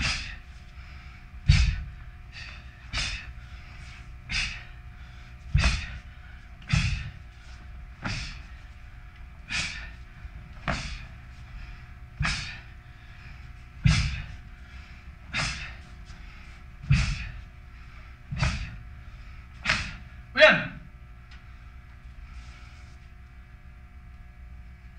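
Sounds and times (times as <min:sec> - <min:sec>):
short thumps: 0:01.5 - 0:02.0, 0:06.6 - 0:07.2, 0:18.3 - 0:18.8.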